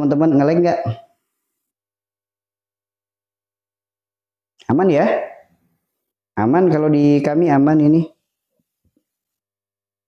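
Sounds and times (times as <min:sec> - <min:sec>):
man's voice: 0:00.0 - 0:01.1, 0:04.6 - 0:05.4, 0:06.4 - 0:08.2.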